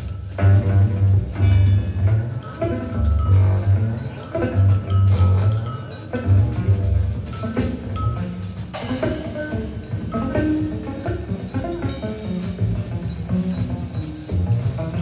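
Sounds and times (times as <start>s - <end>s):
heavy low bass notes: 0.0s - 11.9s
electric guitar notes: 0.0s - 14.9s
drum and cymbal strokes: 0.0s - 15.0s.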